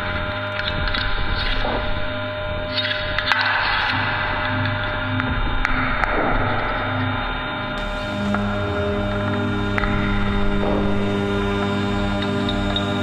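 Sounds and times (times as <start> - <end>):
low pulsing note: 0.0 - 13.0
sustained drone tones: 0.0 - 13.0.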